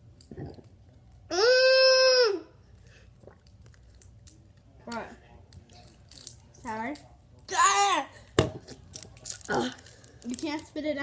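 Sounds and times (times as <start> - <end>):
child humming: 1.3 - 2.5
child speaking: 7.5 - 8.2.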